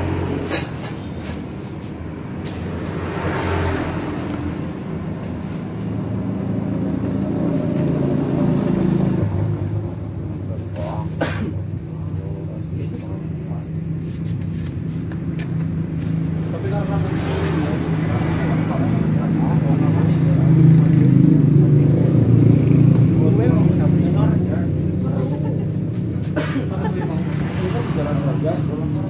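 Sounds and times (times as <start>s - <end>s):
vehicle engine humming: 0.0s - 29.0s.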